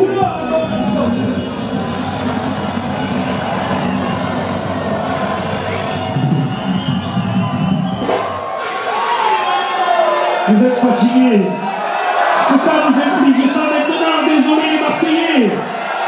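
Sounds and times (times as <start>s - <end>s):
live band playing: 0.0s - 8.6s
concert crowd cheering and shouting: 0.0s - 16.0s.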